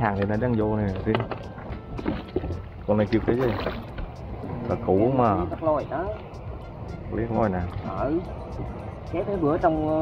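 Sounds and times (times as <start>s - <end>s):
water lapping against boat hull: 0.0s - 10.0s.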